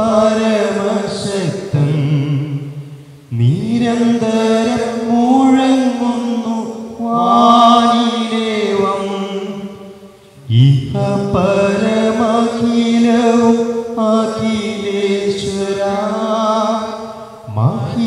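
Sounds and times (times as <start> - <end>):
liturgical chant singing: 0.0 - 18.0
sustained accompanying tone: 0.0 - 18.0.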